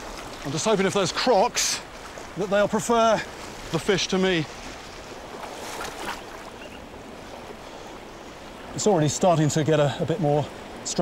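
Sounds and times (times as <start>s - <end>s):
light water splashes: 0.0s - 11.0s
river water churning: 0.0s - 11.0s.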